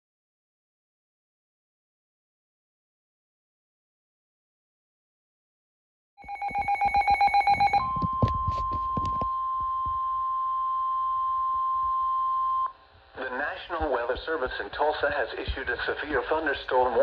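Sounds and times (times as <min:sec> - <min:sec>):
rapid pulsing beeps: 0:06.2 - 0:12.7
steady warning alarm tone: 0:06.2 - 0:12.8
synthesized voice speaking: 0:13.2 - 0:17.0.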